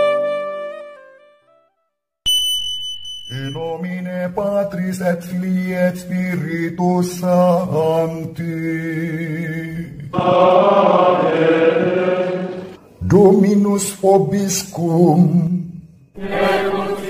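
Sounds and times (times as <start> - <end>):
man chanting: 3.5 - 10.6, 13.0 - 15.8.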